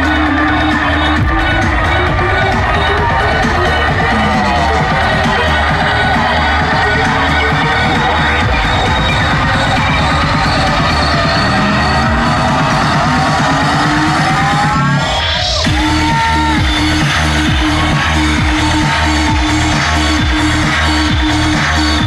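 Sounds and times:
electronic dance music: 0.0 - 22.0
rising sweep: 1.8 - 16.0.

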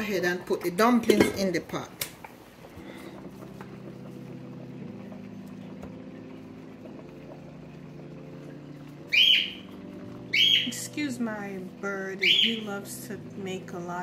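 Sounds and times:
low hum of shifting tones: 2.8 - 14.0
bird squawk: 9.1 - 9.7, 10.3 - 10.8, 12.2 - 12.7.

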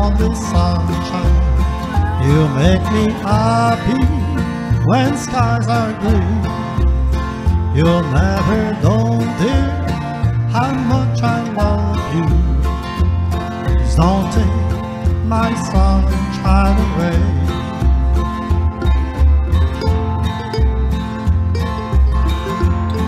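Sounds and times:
electric guitar lead with bent notes: 0.0 - 23.0
pulsing bass line: 0.0 - 23.0.

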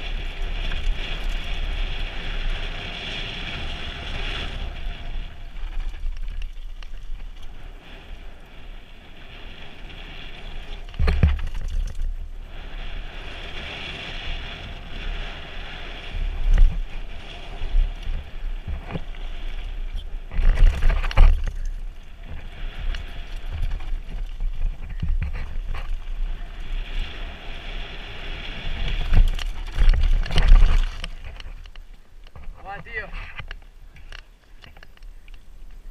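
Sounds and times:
bike rattling: 0.0 - 35.9
wind on microphone: 0.0 - 35.9
tyres crunching over stones: 17.8 - 27.0, 28.7 - 35.5.

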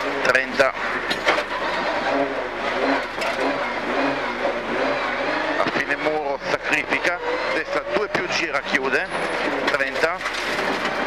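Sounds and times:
car engine accelerating: 0.0 - 11.0.

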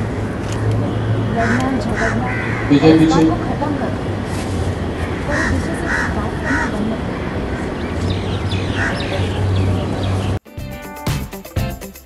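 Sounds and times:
outdoor background noise: 0.0 - 10.4
crows cawing: 1.4 - 2.7, 5.0 - 7.9, 8.7 - 9.2.

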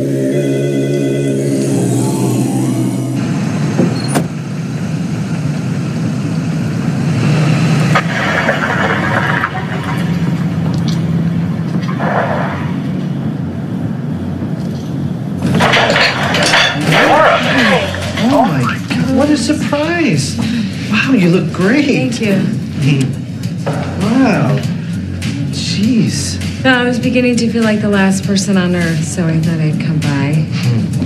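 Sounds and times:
music: 0.0 - 3.7, 16.8 - 31.0
passing cars rumble: 0.0 - 31.0.

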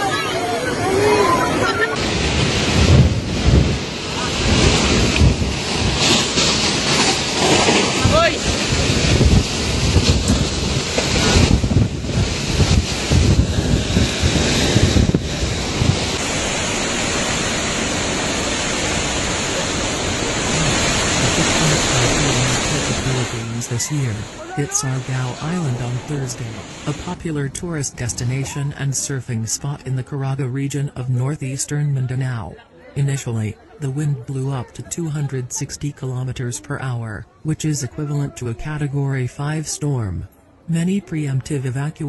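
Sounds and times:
strong wind gusting: 0.0 - 28.8
heavy rain: 0.0 - 30.1.

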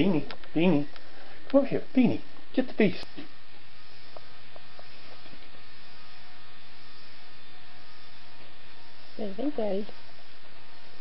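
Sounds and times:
steady hum and hiss: 0.0 - 11.0.

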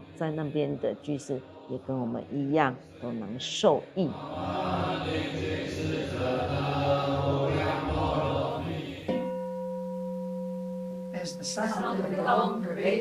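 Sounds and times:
group chanting in unison: 0.0 - 9.3, 11.6 - 13.0
temple gong ringing: 9.1 - 12.7.

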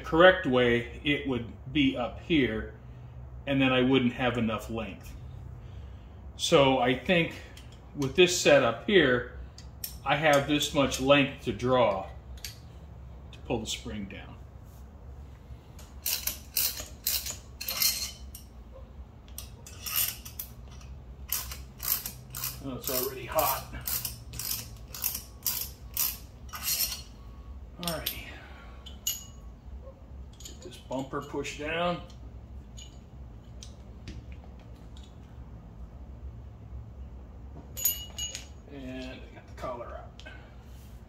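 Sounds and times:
metal parts clicking: 15.8 - 18.5, 19.2 - 27.2, 27.8 - 29.4
metal tools clinking and rattling: 15.8 - 18.6, 19.4 - 27.2, 27.8 - 29.5, 30.2 - 33.8, 37.7 - 39.2.

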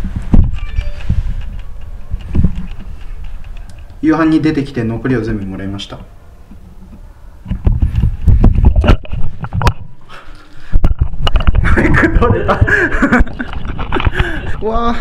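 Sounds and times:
camera handling bumps and clicks: 7.5 - 9.9, 10.8 - 11.6.

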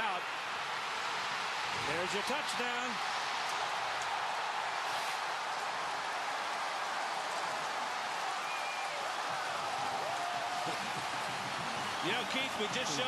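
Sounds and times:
stadium crowd cheering: 0.0 - 13.0.

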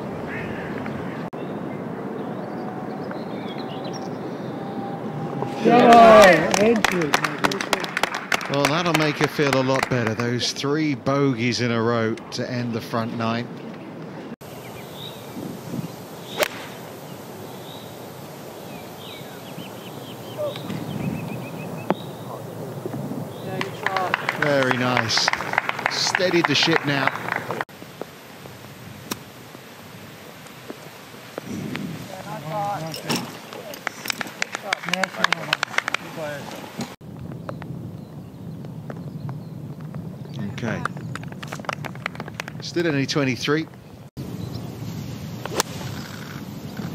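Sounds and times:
quiet outdoor background: 0.0 - 46.9
voices: 0.3 - 13.6, 20.2 - 20.8, 21.9 - 27.6, 32.0 - 37.0, 40.3 - 41.1, 42.4 - 43.8
scattered hand-clapping: 5.7 - 10.4, 23.5 - 27.7, 33.8 - 36.6, 40.8 - 42.7
golf club striking ball: 16.3 - 16.8.

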